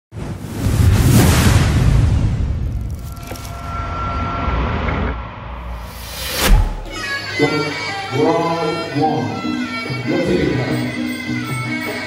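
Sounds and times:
high ringing tone: 3.0 - 5.8.

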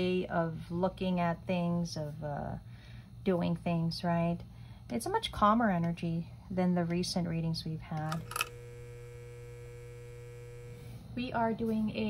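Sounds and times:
woman speaking: 0.0 - 2.6, 3.2 - 8.2, 11.2 - 12.0
electrical hum: 0.0 - 12.0.

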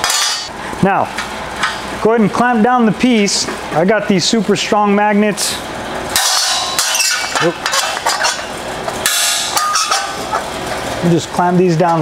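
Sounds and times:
magnets clacking onto steel sheet: 0.0 - 0.5, 6.2 - 10.4.

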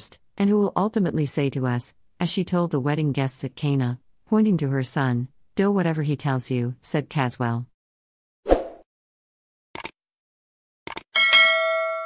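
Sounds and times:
double mouse click: 10.9 - 11.1
bright bell ding: 11.2 - 12.0.

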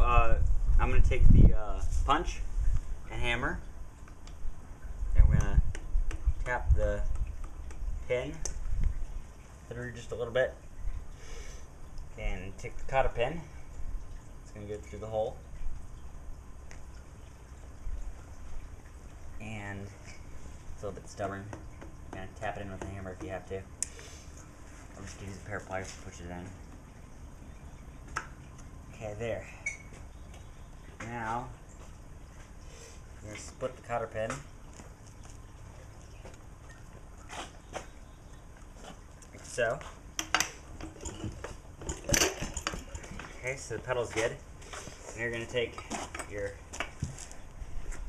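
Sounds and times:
low steady background hum: 0.0 - 48.0.

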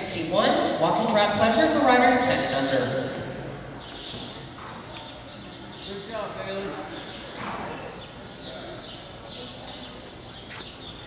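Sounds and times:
indoor hall noise: 0.0 - 11.0.

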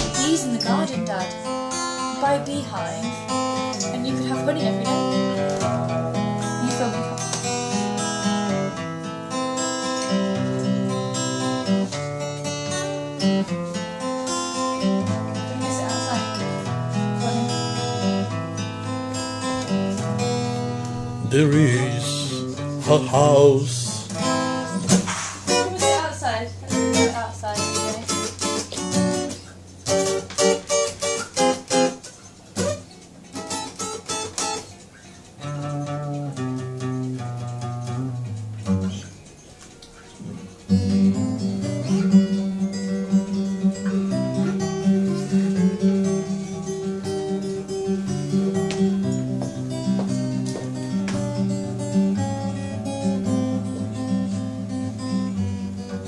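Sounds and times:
acoustic guitar picked: 0.0 - 56.0.

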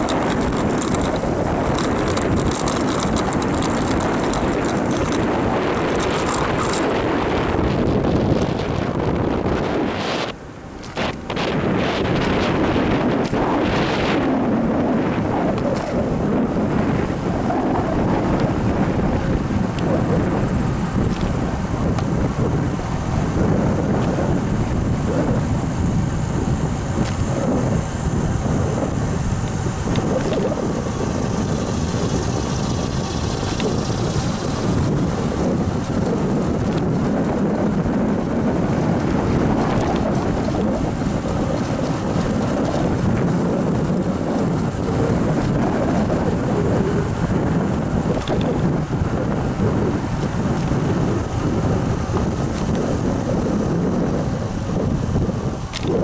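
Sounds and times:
tyre and road noise: 0.0 - 56.0
wind rumble on microphone: 0.0 - 56.0.

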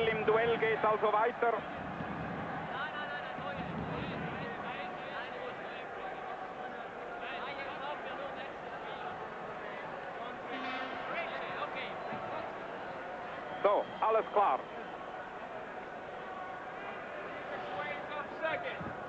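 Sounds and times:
crowd chattering: 0.0 - 19.0.

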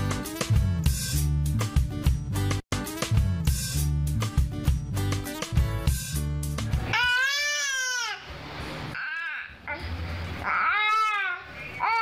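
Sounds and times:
baby making high-pitched sounds: 6.9 - 8.3, 9.0 - 12.0.

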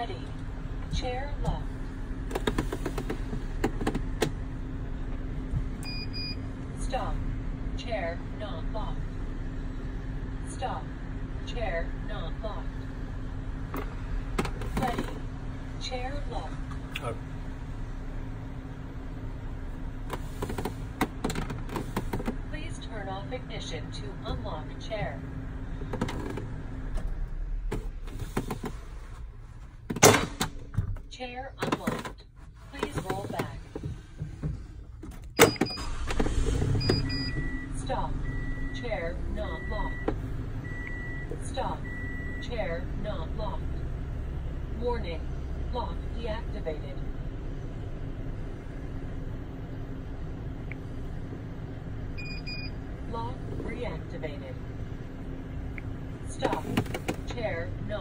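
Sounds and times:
vehicle idling rumble: 0.0 - 29.9, 32.6 - 58.0
low steady hum: 0.0 - 58.0
docking latch clunk: 29.9 - 32.2
short electronic beeps: 36.8 - 38.8.

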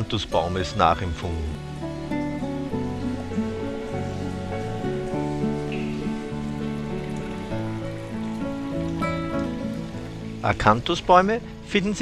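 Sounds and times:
calm guitar music: 0.0 - 12.0.

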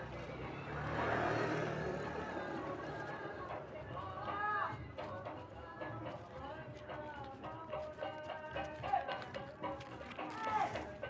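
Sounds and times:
vehicle engine running: 0.0 - 4.0.

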